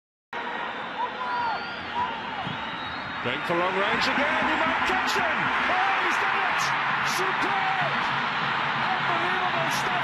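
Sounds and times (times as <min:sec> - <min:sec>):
stadium crowd noise: 0:00.4 - 0:10.0.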